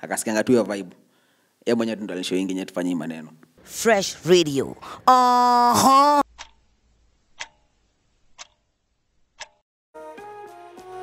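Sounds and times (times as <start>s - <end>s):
person saying ha: 4.6s - 6.2s
clock ticking: 6.2s - 6.7s, 7.3s - 8.7s, 9.4s - 9.6s.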